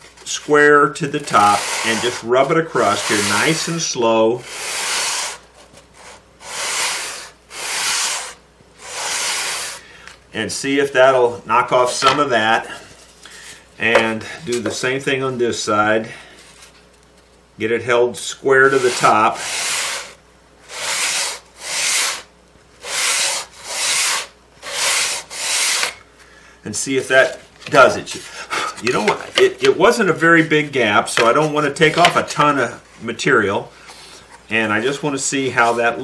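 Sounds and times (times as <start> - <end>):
wood sanding strokes on sandpaper: 1.2 - 3.8, 4.4 - 5.4, 6.0 - 9.8, 18.6 - 26.0.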